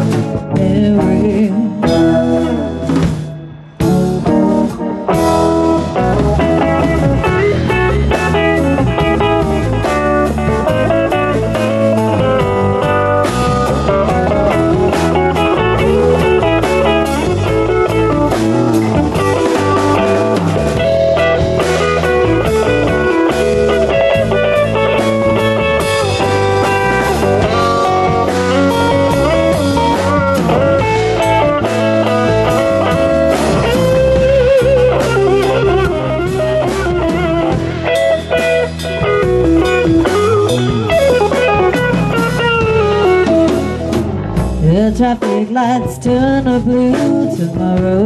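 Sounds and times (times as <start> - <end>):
live rock band instrumental: 0.0 - 48.0.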